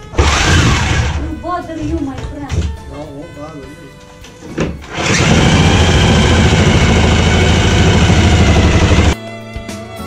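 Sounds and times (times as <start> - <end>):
power tool running: 0.0 - 1.2, 4.8 - 9.2.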